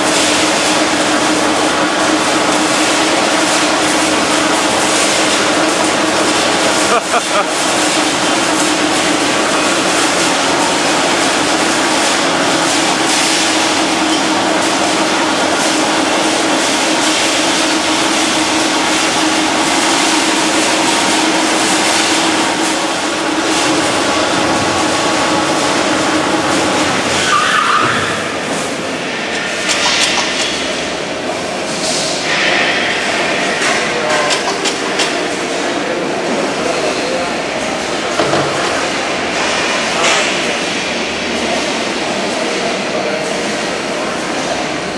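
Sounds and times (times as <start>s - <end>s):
factory machinery din: 0.0s - 44.9s
steady hum: 0.0s - 44.9s.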